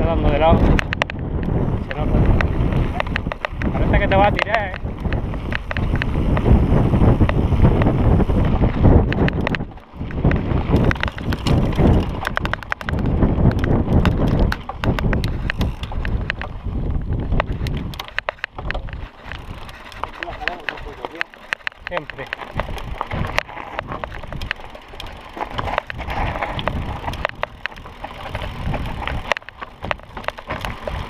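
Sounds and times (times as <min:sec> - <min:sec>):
mountain bike rattling on rocks: 0:00.0 - 0:31.0
wind buffeting microphone: 0:00.0 - 0:31.0.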